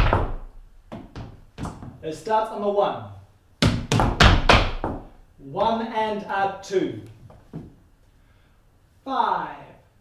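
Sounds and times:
tap shoes on wooden floor: 0:00.0 - 0:02.0, 0:03.6 - 0:05.8, 0:07.2 - 0:07.8.

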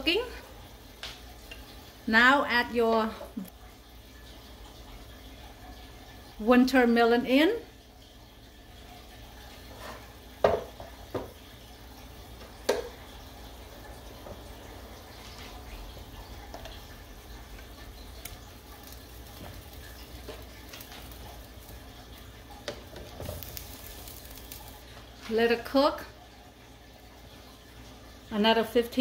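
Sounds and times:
broth boiling and bubbling: 0:00.0 - 0:29.0
kitchenware knocks: 0:10.4 - 0:11.4.

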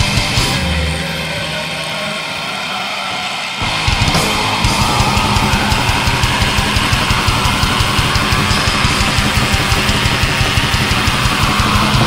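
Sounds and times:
bass: 0:00.0 - 0:02.3, 0:03.6 - 0:12.0
distorted guitars: 0:00.0 - 0:12.0
fast dense drumming: 0:03.6 - 0:12.0.

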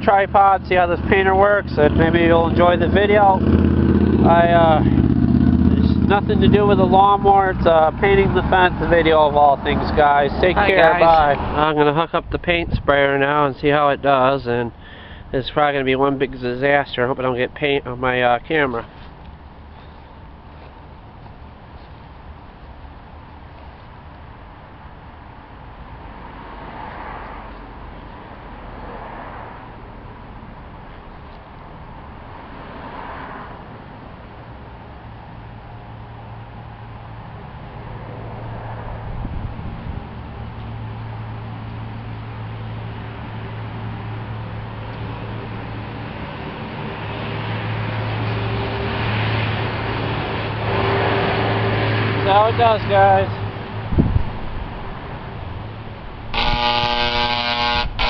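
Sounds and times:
electric paint sprayer buzzing: 0:56.4 - 0:58.0.

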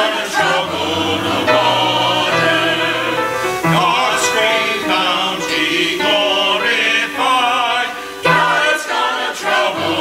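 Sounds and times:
choir singing: 0:00.0 - 0:10.0.

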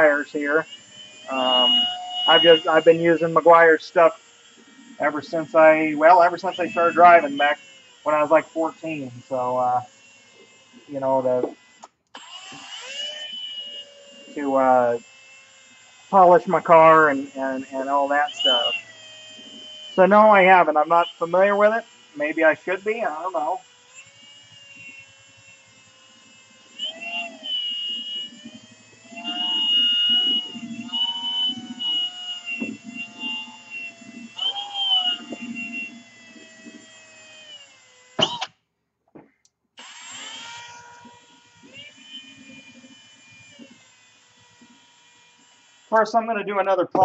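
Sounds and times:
cordless drill motor whine: 0:00.0 - 0:38.6, 0:39.8 - 0:47.0.

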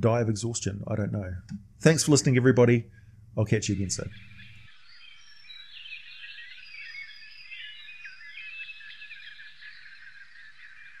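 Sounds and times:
chorus of small birds singing: 0:02.9 - 0:11.0.

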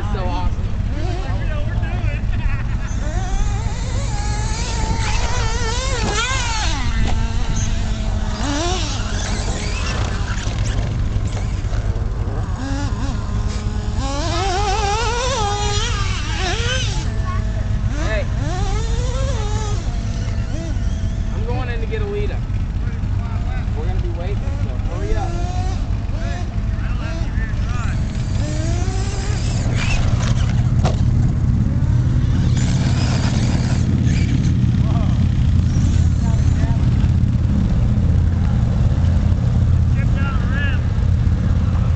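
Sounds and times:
low engine rumble: 0:00.0 - 0:41.9
electric toy truck motor whining: 0:03.0 - 0:21.3, 0:32.2 - 0:34.6.

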